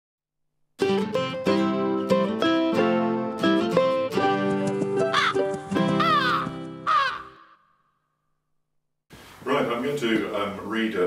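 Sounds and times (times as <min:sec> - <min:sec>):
crow cawing: 0:05.1 - 0:07.9.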